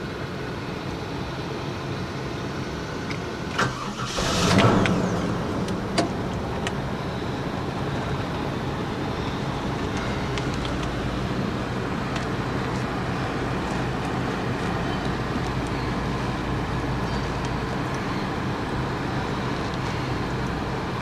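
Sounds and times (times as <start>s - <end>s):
car engine starting and idling: 2.0s - 21.0s.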